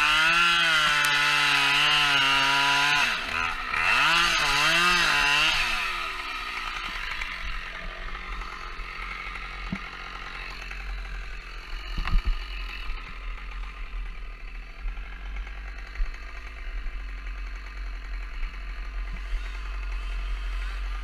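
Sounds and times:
chainsaw idling: 0:00.0 - 0:21.0.

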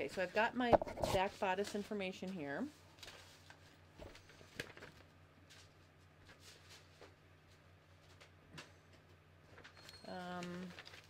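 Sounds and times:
paper rustling: 0:03.0 - 0:08.3, 0:09.5 - 0:11.0.

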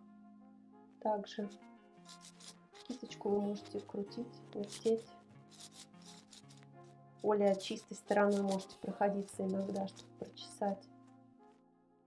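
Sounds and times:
brush rubbing through eyebrow hairs: 0:01.4 - 0:10.8.

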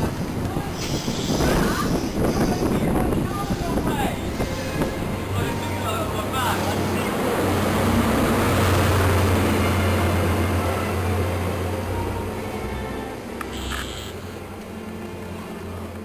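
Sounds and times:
low diesel drone: 0:00.0 - 0:16.0.

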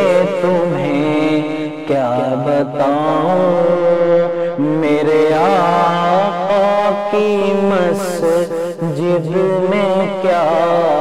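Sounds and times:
voices singing devotional chant: 0:00.0 - 0:03.8, 0:04.6 - 0:11.0.

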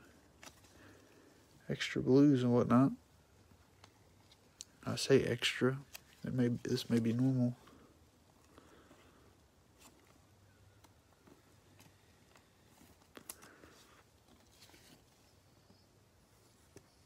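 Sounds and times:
faint rustling of cards: 0:00.0 - 0:17.0
small clicks of card sleeves: 0:05.8 - 0:07.2, 0:10.8 - 0:15.0.

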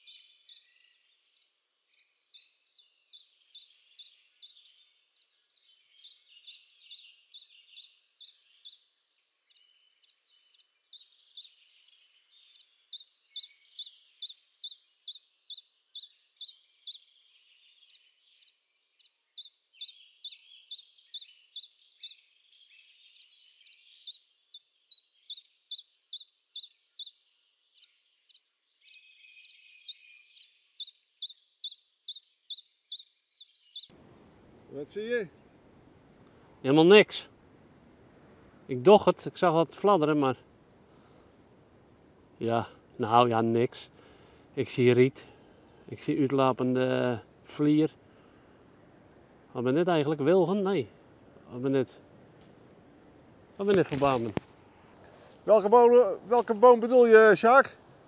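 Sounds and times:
birds twittering: 0:00.0 - 0:35.7, 0:42.1 - 0:58.0.

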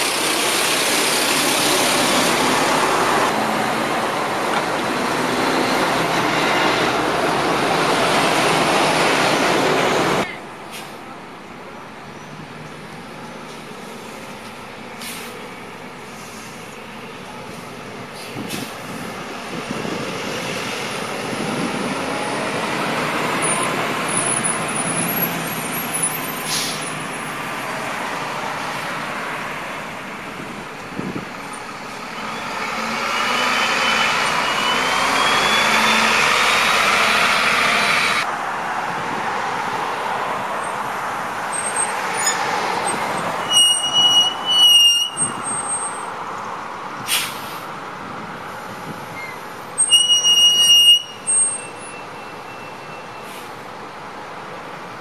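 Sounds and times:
buses driving past: 0:00.0 - 0:55.0
bus brake squeal: 0:23.4 - 0:27.0, 0:32.1 - 0:38.2, 0:43.2 - 0:46.1, 0:49.1 - 0:53.6.

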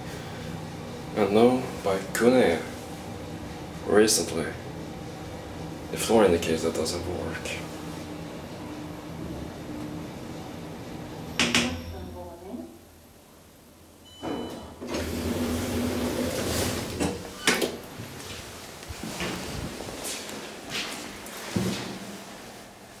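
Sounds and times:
elevator humming: 0:00.0 - 0:21.5
elevator stopping clunk: 0:14.1 - 0:17.8
elevator doors sliding open: 0:14.1 - 0:18.2.

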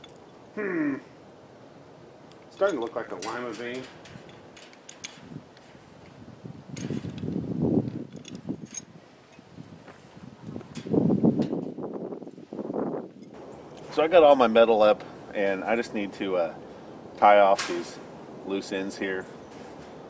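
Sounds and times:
wire mesh rustling and scraping: 0:02.4 - 0:15.8, 0:17.3 - 0:20.0.

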